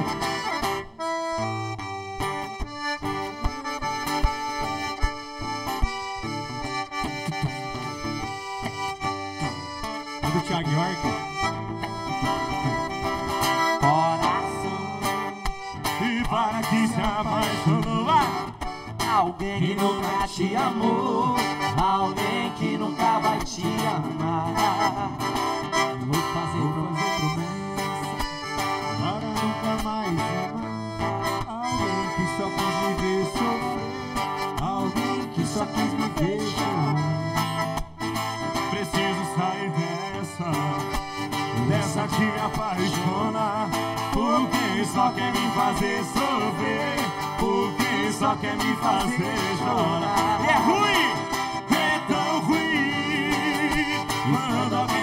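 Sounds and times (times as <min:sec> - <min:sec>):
accordion: 0:00.0 - 0:55.0
strummed acoustic guitar: 0:00.0 - 0:55.0
men singing into microphones: 0:13.8 - 0:15.2, 0:15.9 - 0:18.4, 0:19.0 - 0:28.0, 0:31.4 - 0:37.3, 0:38.6 - 0:40.9, 0:41.5 - 0:55.0.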